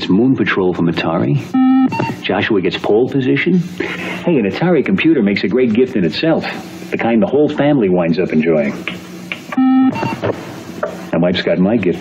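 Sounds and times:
computer beeps: 0:01.5 - 0:02.2, 0:09.6 - 0:10.2.

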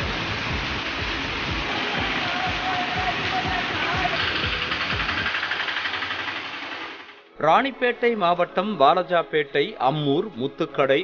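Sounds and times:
tyres hissing through water: 0:00.0 - 0:06.9
auto-rickshaw engine running: 0:00.0 - 0:07.3.

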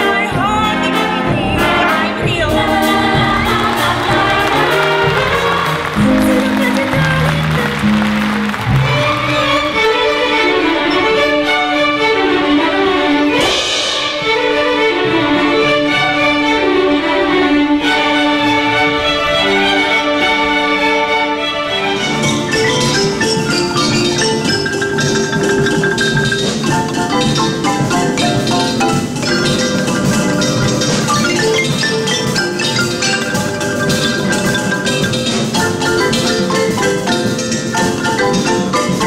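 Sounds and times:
string orchestra playing: 0:00.0 - 0:39.0.

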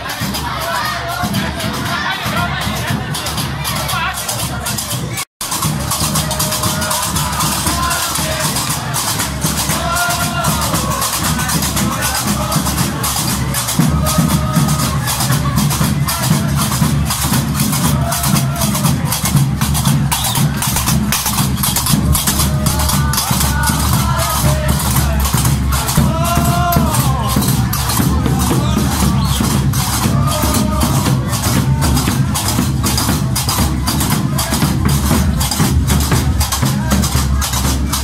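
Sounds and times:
low drum beat: 0:00.0 - 0:38.0
voices chanting: 0:00.0 - 0:38.0.

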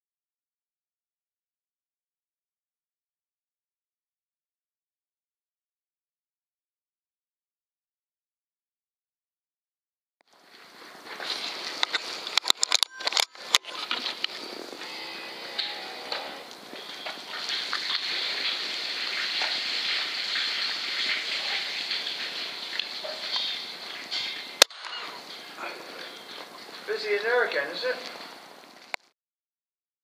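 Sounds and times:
recorder hiss: 0:10.3 - 0:29.1
small clicks and knocks: 0:11.8 - 0:14.4.

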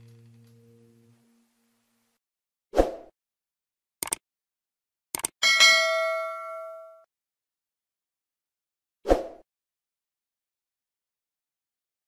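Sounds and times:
bell ding: 0:05.4 - 0:07.1.

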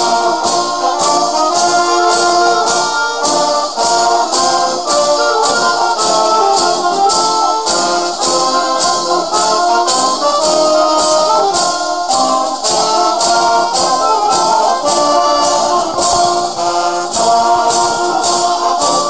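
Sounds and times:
brass sustained chords: 0:00.0 - 0:19.0
steady percussion beat: 0:00.0 - 0:19.0
wind band playing: 0:00.0 - 0:19.0.

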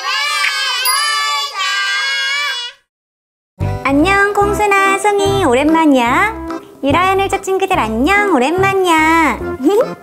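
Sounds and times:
child singing a jingle: 0:00.3 - 0:02.6.

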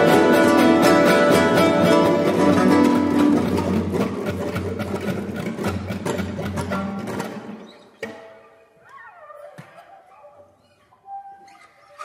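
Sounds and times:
plucked guitars and setar: 0:00.0 - 0:08.4.

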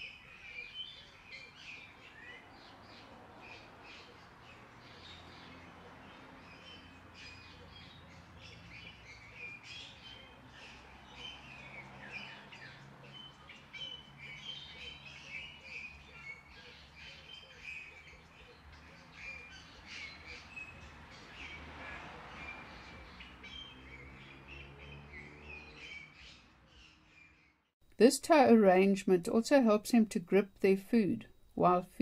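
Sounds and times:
birds chirping: 0:00.0 - 0:27.7.

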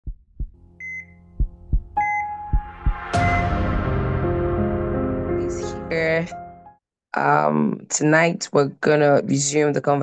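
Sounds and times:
heartbeat double thumps: 0:00.0 - 0:03.4
sustained synth music: 0:00.6 - 0:06.8
electronic monitor beeps: 0:00.8 - 0:01.3, 0:02.0 - 0:03.6.

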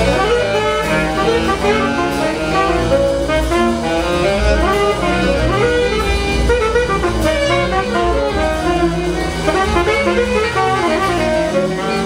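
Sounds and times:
double bass: 0:00.0 - 0:12.0
jazz band improvising: 0:00.0 - 0:12.0
tenor saxophone: 0:00.0 - 0:12.0.

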